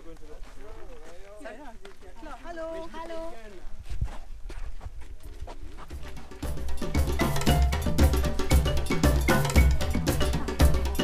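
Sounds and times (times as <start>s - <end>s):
upbeat percussive music: 5.8s - 11.0s.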